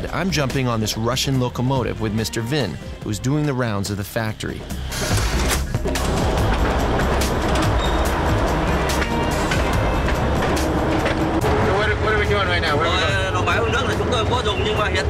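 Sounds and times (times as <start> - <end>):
diesel locomotive engine rumbling: 4.7 - 15.0.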